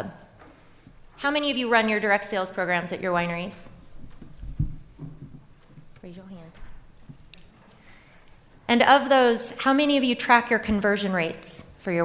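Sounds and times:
dull low thumps: 4.0s - 5.9s.

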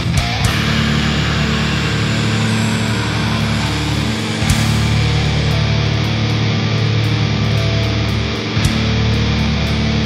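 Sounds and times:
death metal distorted guitars: 0.0s - 10.0s.

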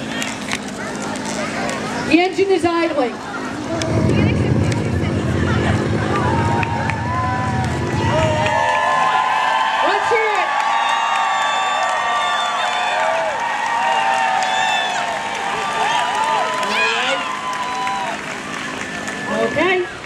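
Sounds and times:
crowd cheering and whooping: 3.2s - 20.0s.

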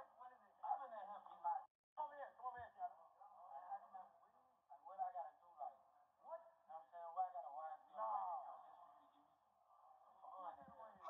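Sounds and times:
voices through small speaker: 0.0s - 11.0s.

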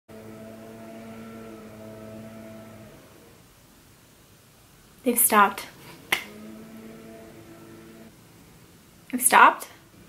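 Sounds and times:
motor drone: 0.1s - 3.5s, 6.2s - 8.3s.

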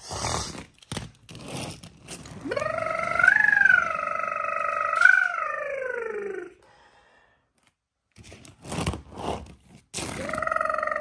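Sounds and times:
person imitating engine noise: 2.4s - 6.6s, 10.2s - 11.0s.

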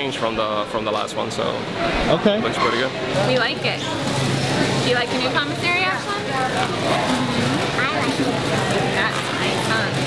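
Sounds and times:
grocery store bustle: 0.0s - 10.0s.

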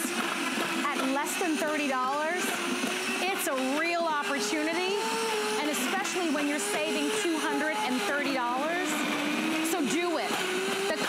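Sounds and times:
blender motor running: 0.0s - 11.0s.

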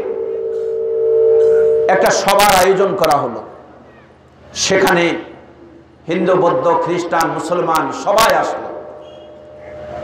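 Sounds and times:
man speaking: 1.9s - 3.4s.

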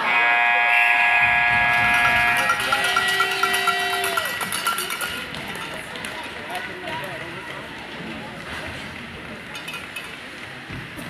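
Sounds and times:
game horn blast: 0.0s - 2.6s.

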